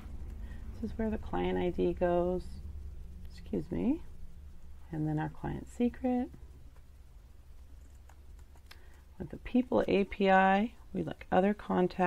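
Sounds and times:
low hum: 0.0s - 12.0s
keyboard and mouse clicks: 7.8s - 9.0s.

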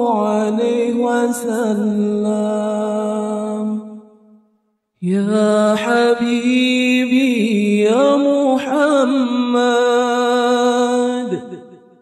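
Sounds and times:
person singing unaccompanied: 0.0s - 3.8s, 5.0s - 11.6s.

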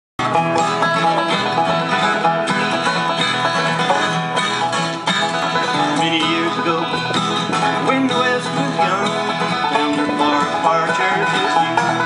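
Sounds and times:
acoustic guitar strumming: 0.2s - 12.0s
banjo picking: 0.2s - 12.0s.

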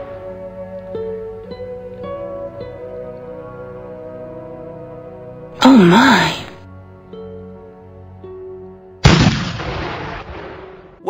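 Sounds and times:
cannon shot: 9.0s - 11.0s.

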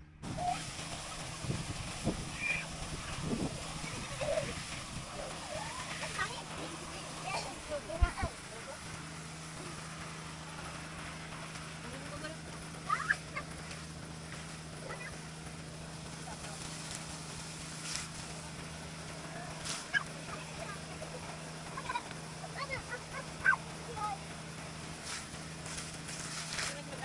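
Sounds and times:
steady low hum: 0.0s - 27.0s
water gushing from a pipe: 0.2s - 27.0s.

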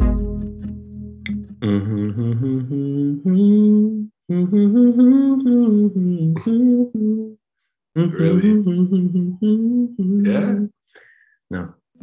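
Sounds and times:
man humming: 1.6s - 7.4s, 8.0s - 10.7s.

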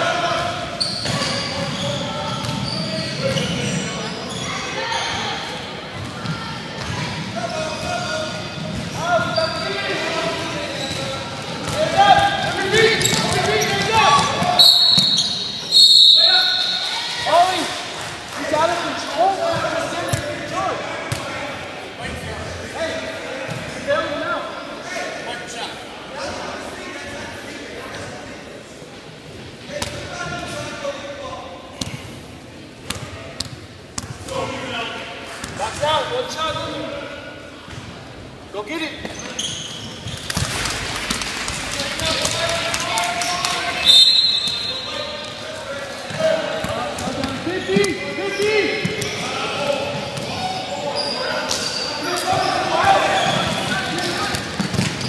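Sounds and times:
referee's whistle blast: 14.6s - 16.9s, 43.8s - 45.0s.

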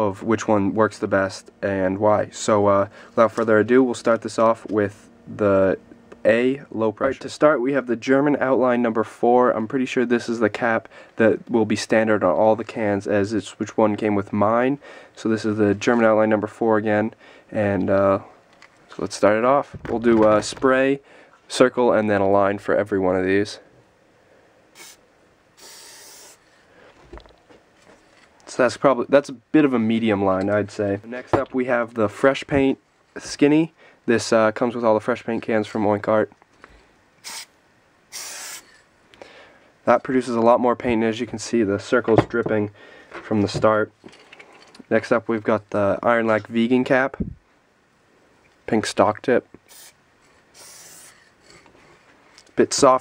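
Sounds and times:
spray paint can hissing: 24.8s - 25.0s, 25.6s - 26.5s, 38.1s - 38.8s, 49.7s - 51.2s.

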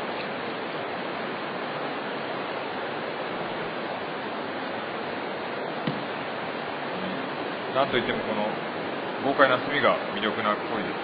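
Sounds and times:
running water rushing: 0.0s - 11.0s
faint knock: 5.8s - 6.1s.

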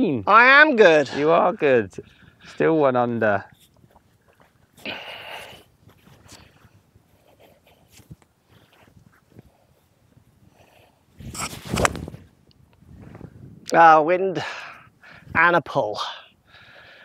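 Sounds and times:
golf club swish: 11.4s - 12.2s.

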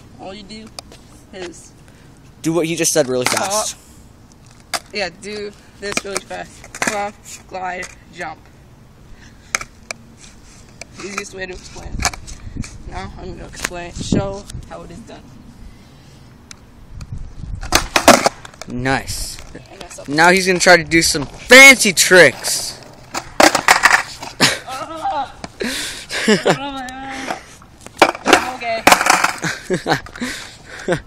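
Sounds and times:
skateboard clacking on concrete: 3.0s - 3.7s, 4.6s - 8.0s, 10.8s - 12.2s, 17.6s - 21.4s, 22.3s - 24.4s, 26.8s - 30.2s
person speaking: 28.2s - 29.2s.

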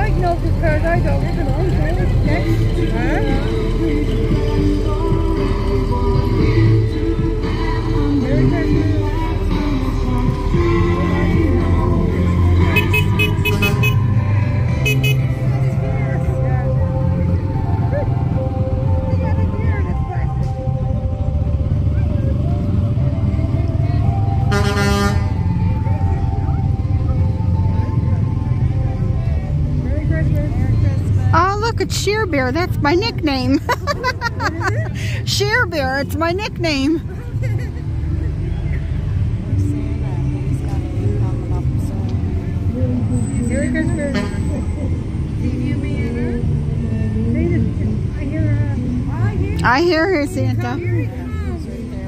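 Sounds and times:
chatter of onlookers: 0.0s - 52.0s
rumble of slow passing vehicles: 0.0s - 52.0s
vehicle horn blast: 12.6s - 15.4s, 24.5s - 25.4s.

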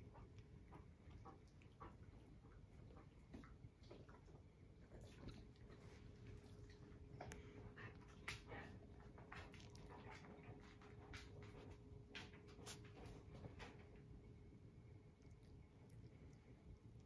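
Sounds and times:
dog licking and nibbling cat: 0.0s - 17.0s.

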